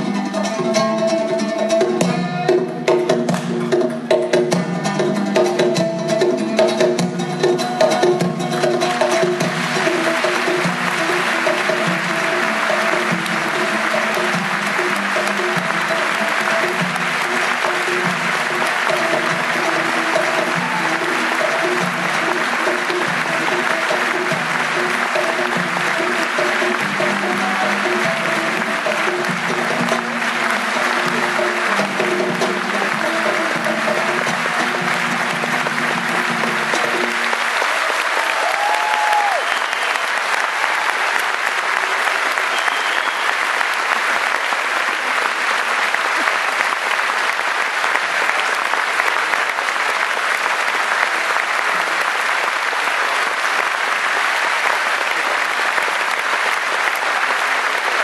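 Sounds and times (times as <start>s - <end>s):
live folk band playing: 0.0s - 37.4s
audience applauding: 5.2s - 58.0s.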